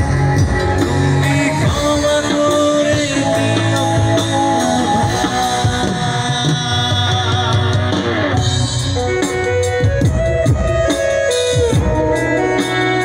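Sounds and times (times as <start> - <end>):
person singing into a microphone: 0.0 - 9.8
bass guitar: 0.0 - 13.0
drum kit: 0.0 - 13.0
electric guitar: 0.0 - 13.0.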